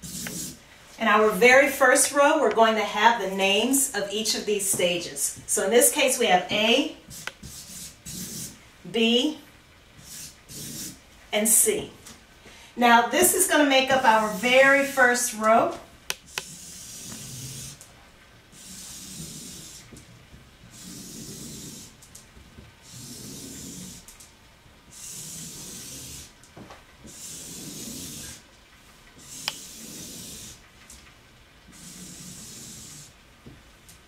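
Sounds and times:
marker scratching across paper: 0.0 - 0.6, 6.5 - 8.6, 10.0 - 11.0, 13.2 - 17.8, 18.5 - 20.0, 20.7 - 22.0, 22.8 - 24.1, 24.9 - 26.4, 27.0 - 28.5, 29.2 - 30.6, 31.7 - 33.2.

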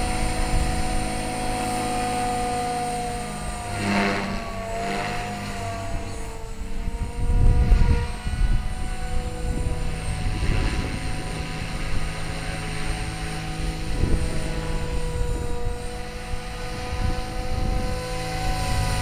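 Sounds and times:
rc helicopter whine: 0.0 - 19.0.

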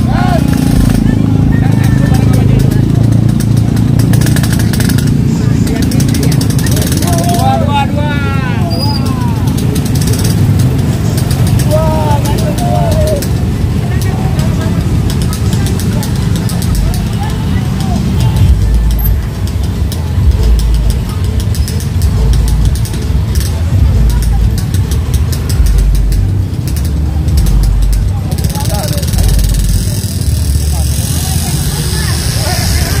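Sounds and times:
people calling out: 0.0 - 2.2, 6.6 - 9.8, 11.4 - 19.2
motorcycle engines rumbling: 0.0 - 33.0.

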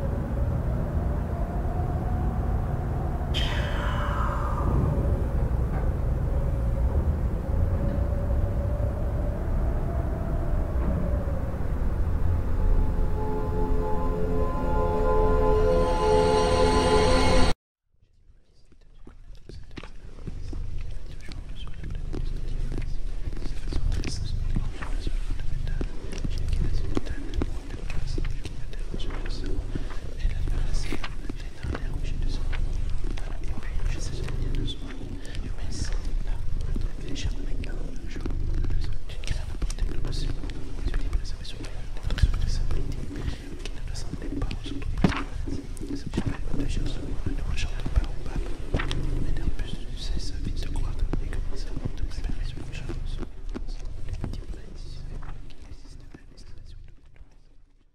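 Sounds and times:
quiet whispering: 0.0 - 6.8, 18.1 - 57.9
low rumble: 0.0 - 17.6, 19.0 - 57.0.

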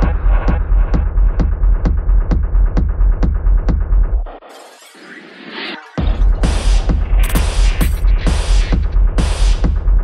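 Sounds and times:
techno music: 0.0 - 10.0.

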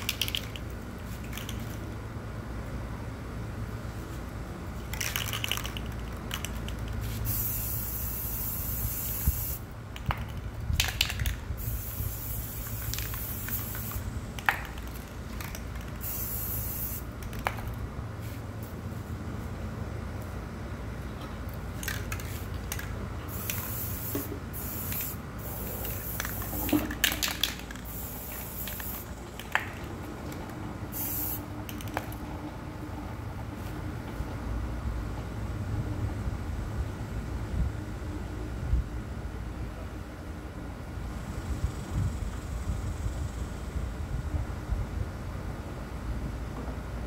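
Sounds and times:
spray paint can hissing: 0.0 - 1.8, 4.8 - 18.4, 21.8 - 29.8, 30.9 - 32.2
aerosol spray hissing: 7.0 - 9.6, 11.6 - 14.1, 16.0 - 17.0, 23.3 - 26.8, 27.8 - 29.1, 30.9 - 31.4.

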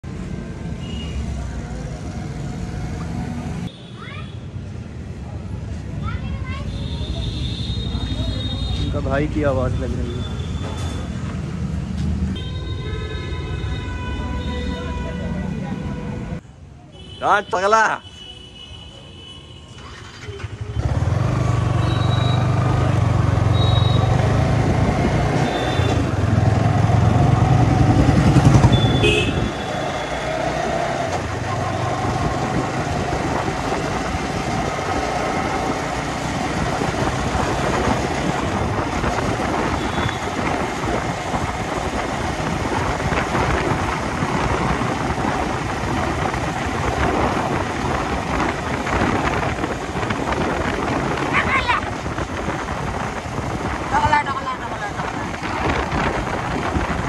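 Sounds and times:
motorcycle engine starting: 19.8 - 23.4
wind noise: 31.2 - 57.0.

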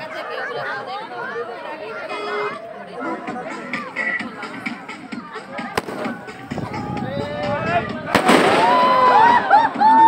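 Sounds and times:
excited voices: 5.5 - 10.0
firework bang: 5.8 - 6.2, 8.1 - 9.0
firework crackle: 5.8 - 6.3, 8.2 - 9.2
firework crack: 5.8 - 6.7, 8.1 - 9.4.

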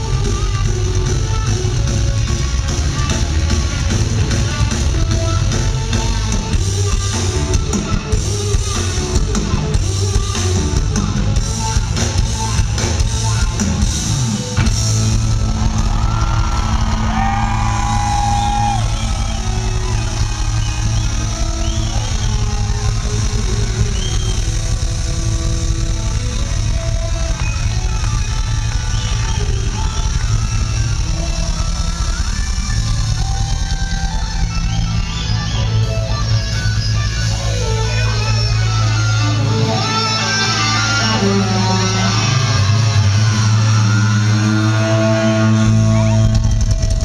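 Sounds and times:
electric guitar: 0.0 - 47.0
live rock band playing: 0.0 - 47.0.

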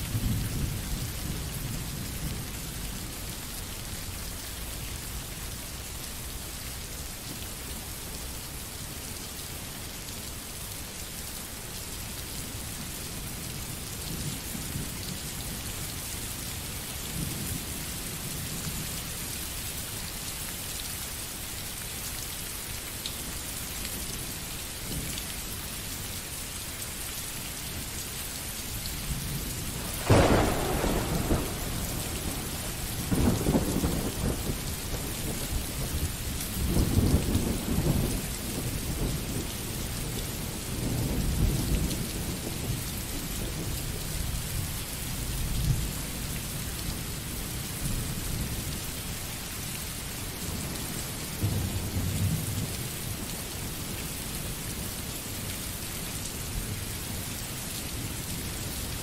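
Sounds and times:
steady rain: 0.0 - 59.0
rolling thunder rumbles: 29.4 - 39.5
thunderclap: 29.8 - 35.1.

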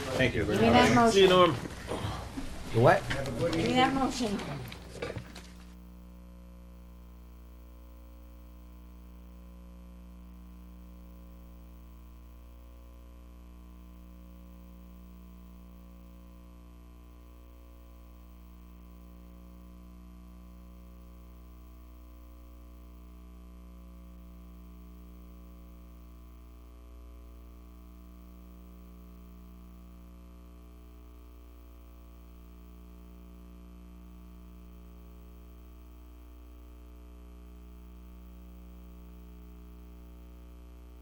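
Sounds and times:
electrical mains hum: 0.0 - 41.0.

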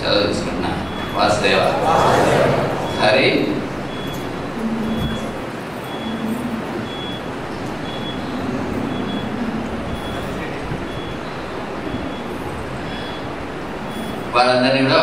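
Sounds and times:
short high-pitched beep: 2.8 - 7.3.

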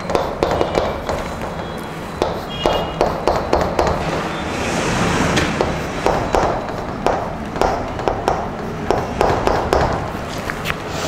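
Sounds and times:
chalk tapping on blackboard: 0.0 - 4.3, 5.4 - 10.3
chalk scratching on blackboard: 0.0 - 6.6.

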